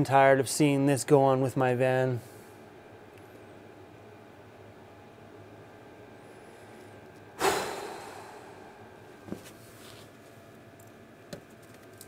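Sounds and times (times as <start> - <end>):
man sighing heavily: 7.4 - 8.8.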